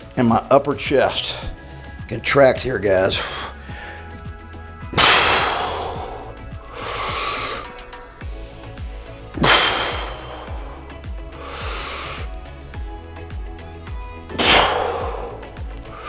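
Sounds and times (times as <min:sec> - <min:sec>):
background music: 0:00.0 - 0:16.0
man breathing heavily: 0:01.4 - 0:02.0, 0:03.1 - 0:16.0
forceful exhales: 0:04.9 - 0:07.9, 0:09.4 - 0:12.3, 0:14.3 - 0:16.0.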